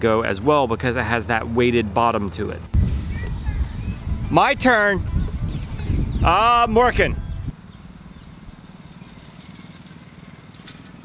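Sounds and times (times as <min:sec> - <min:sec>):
loud low rumble: 0:02.8 - 0:08.6
distant small engine humming: 0:05.0 - 0:11.0.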